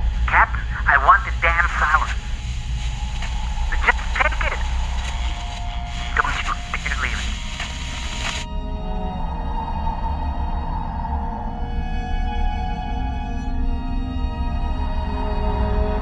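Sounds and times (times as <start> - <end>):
radio hiss: 0.0 - 8.5
music: 0.0 - 16.0
person speaking: 0.2 - 2.2, 3.7 - 4.7, 6.0 - 7.4.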